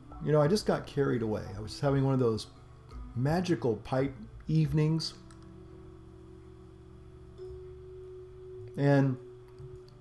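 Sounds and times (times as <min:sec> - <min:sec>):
faint steady tone: 0:00.0 - 0:10.0
low room rumble: 0:00.0 - 0:10.0.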